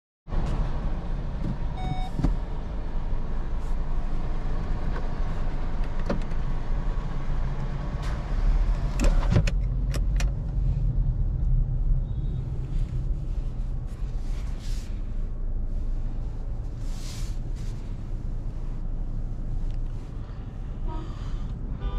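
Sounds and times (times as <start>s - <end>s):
car engine and road rumble: 0.3s - 21.9s
short electronic beep: 1.8s - 2.1s
sharp clicks from controls: 8.9s - 10.6s.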